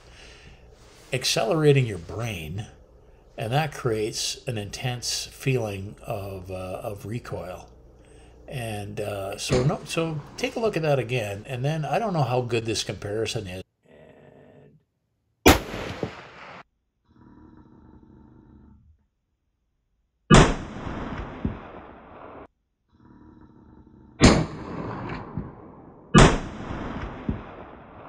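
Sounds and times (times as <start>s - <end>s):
rifle shots with echo: 15.5s - 16.6s, 20.3s - 22.5s, 24.2s - 28.0s.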